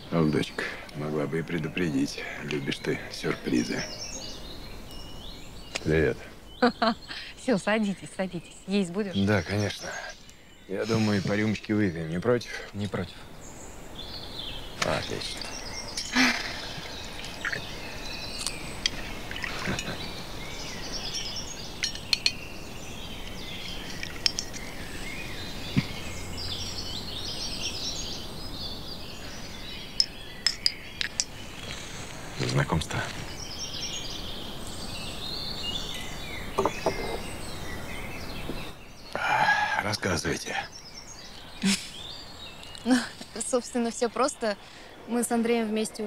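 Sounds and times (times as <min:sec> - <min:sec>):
garden birds chirping: 0:00.0 - 0:46.0
small glasses clinking: 0:15.4 - 0:16.2, 0:18.4 - 0:20.1, 0:21.0 - 0:22.4, 0:23.2 - 0:24.7, 0:30.0 - 0:31.4, 0:36.6 - 0:37.3.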